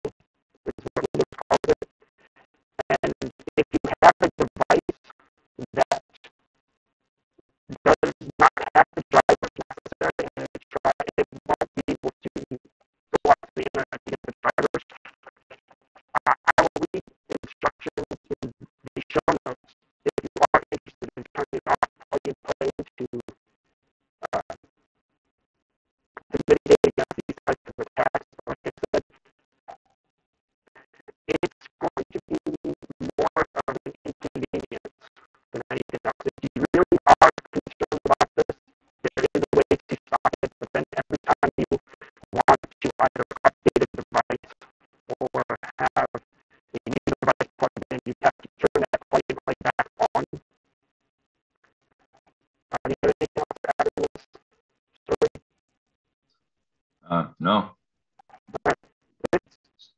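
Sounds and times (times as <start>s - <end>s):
garbled voice over video call: 0.7s - 1.9s, 2.8s - 5.0s, 5.6s - 6.2s, 7.7s - 12.6s, 13.2s - 15.1s, 16.2s - 23.3s, 24.2s - 24.6s, 26.2s - 29.0s, 31.0s - 34.9s, 35.6s - 46.2s, 46.8s - 50.4s, 52.7s - 54.2s, 55.1s - 55.4s, 57.1s - 57.7s, 58.3s - 59.4s.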